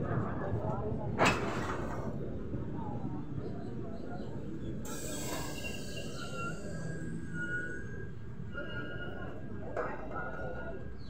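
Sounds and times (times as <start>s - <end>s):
train wheels rumbling on rails: 0.0s - 11.0s
high-pitched wheel squeals: 4.9s - 9.4s.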